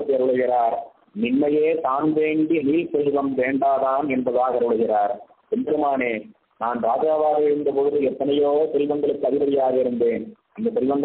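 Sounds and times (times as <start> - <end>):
man speaking: 0.0 - 11.0.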